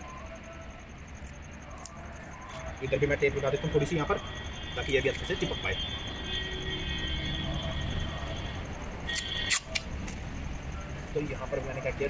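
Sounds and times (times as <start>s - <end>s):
low traffic rumble: 0.0s - 12.0s
packing tape ripping: 9.1s - 9.9s.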